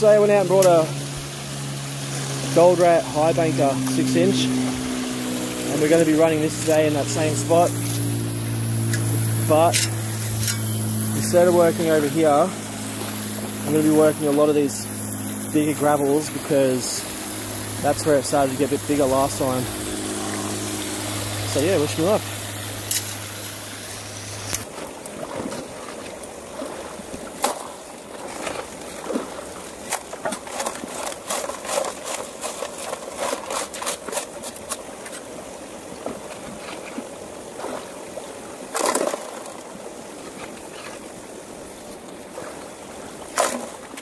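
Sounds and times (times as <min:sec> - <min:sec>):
water running through sluice: 0:00.0 - 0:44.0
shovel scraping gravel: 0:08.9 - 0:12.5.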